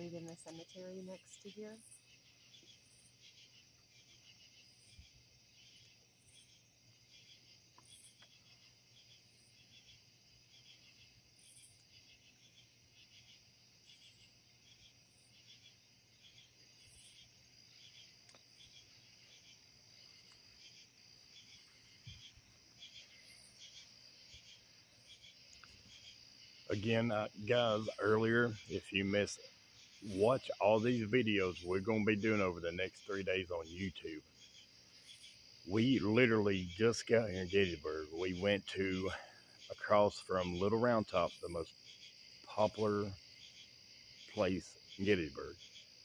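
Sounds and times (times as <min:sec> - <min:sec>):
crickets and night insects trilling: 0:00.0 - 0:46.0.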